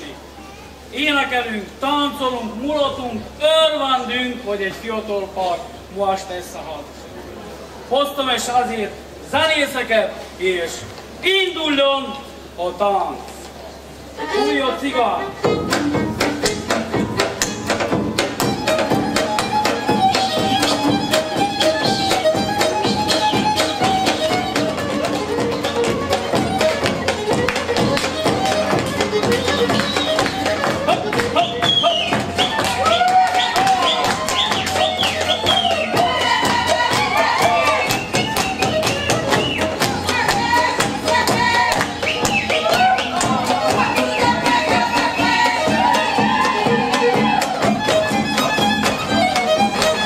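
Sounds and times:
fiddle playing fast melody: 14.2 - 50.0
strummed lute: 15.2 - 32.8
large drum beating: 15.4 - 50.0.

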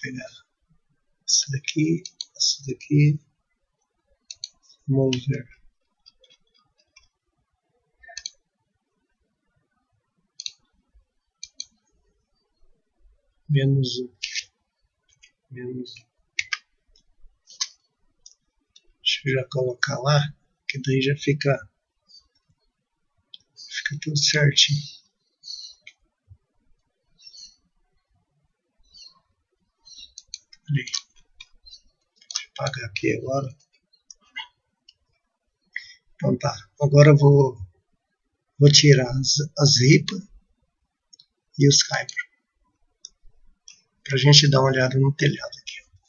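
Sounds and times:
computer mouse clicking: 2.0 - 2.4, 4.3 - 5.2, 8.1 - 8.4, 10.4 - 10.6, 11.4 - 11.8
computer mouse clicks: 2.0 - 2.4, 4.3 - 5.2, 8.1 - 8.4, 10.4 - 10.6, 11.4 - 11.8, 30.0 - 32.6.

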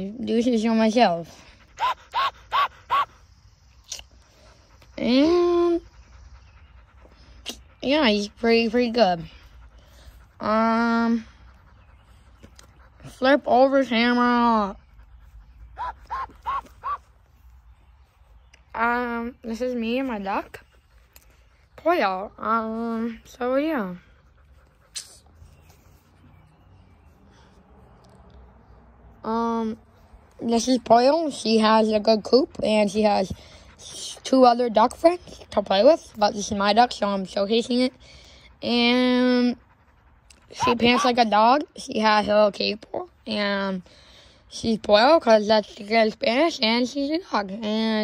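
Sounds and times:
duck panting: 0.7 - 3.2, 4.2 - 17.6, 32.8 - 36.7, 37.7 - 41.6.

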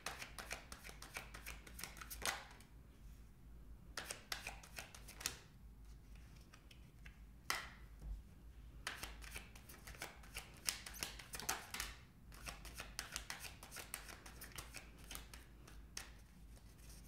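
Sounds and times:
cards being shuffled: 0.0 - 2.6, 4.0 - 5.4, 8.8 - 17.0.

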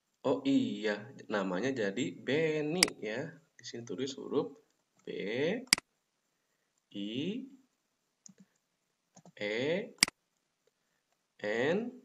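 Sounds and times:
keyboard and mouse clicks: 8.2 - 9.4.

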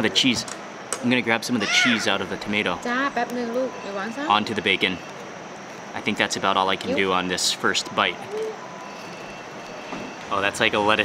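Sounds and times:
dining room background noise: 0.0 - 11.0.

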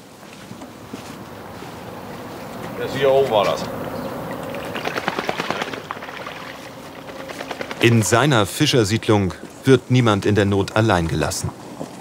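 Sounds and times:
footsteps and hedge leaves rustling: 0.0 - 4.8.

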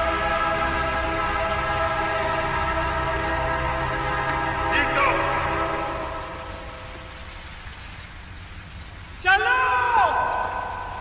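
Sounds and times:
low rumble: 0.0 - 9.1.

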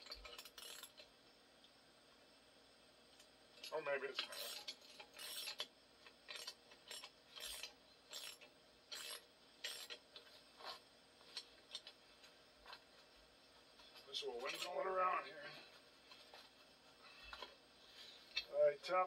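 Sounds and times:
metal scraping rasps: 0.0 - 1.1, 3.6 - 10.8, 14.3 - 14.9.

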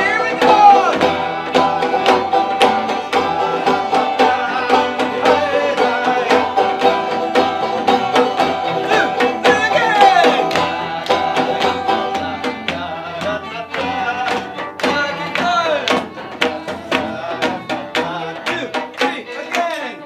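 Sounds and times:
bowed cello: 0.0 - 18.8
banjo picking: 0.0 - 20.0
violin: 0.0 - 20.0.

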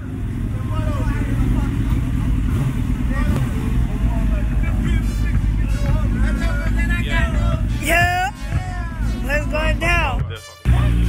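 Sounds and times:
crowd talking and calling out: 0.0 - 11.0
motorcycle engines rumbling: 0.0 - 11.0.

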